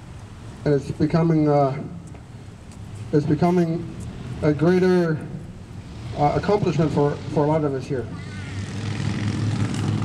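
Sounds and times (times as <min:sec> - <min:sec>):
low engine drone: 0:00.0 - 0:10.0.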